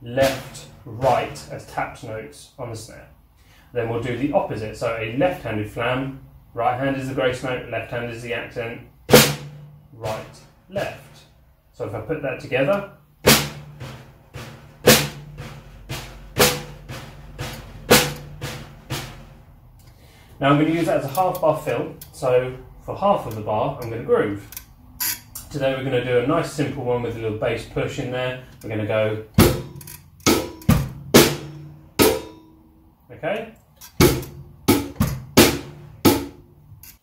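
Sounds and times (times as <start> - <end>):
snare drum strokes: 0.2 - 1.6, 9.1 - 11.2, 13.2 - 19.5, 29.4 - 32.6, 34.0 - 37.0.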